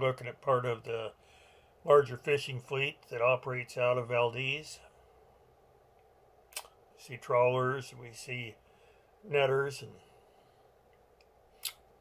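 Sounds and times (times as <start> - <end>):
sharp click-like hiss: 6.5 - 6.8, 11.2 - 11.8.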